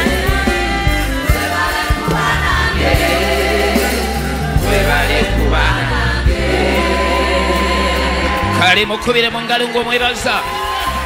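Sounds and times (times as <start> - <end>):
church choir singing: 0.0 - 11.0
low instrumental accompaniment: 0.0 - 11.0.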